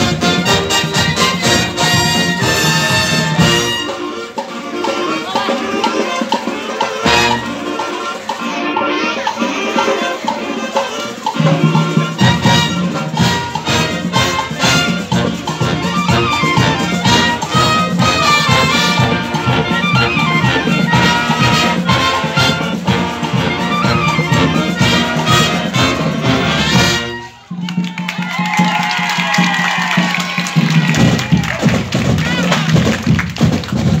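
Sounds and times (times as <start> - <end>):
marching band playing: 0.0 - 34.0.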